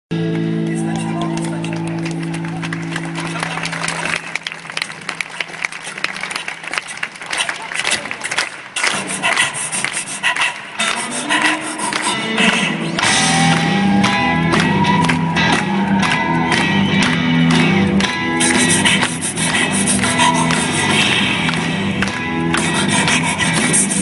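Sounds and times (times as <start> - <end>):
guitar playing: 0.1 - 4.2, 12.1 - 23.0
audience clapping: 0.1 - 24.0
crowd noise: 0.1 - 24.0.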